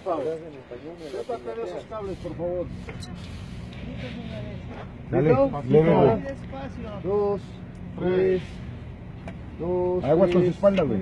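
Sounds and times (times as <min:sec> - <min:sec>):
faint indistinct voices: 0:00.0 - 0:08.6
steady low rumble: 0:00.0 - 0:11.0.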